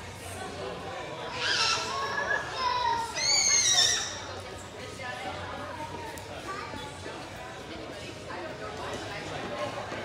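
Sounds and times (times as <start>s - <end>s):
background chatter: 0.0s - 10.0s
child squealing: 1.3s - 4.3s.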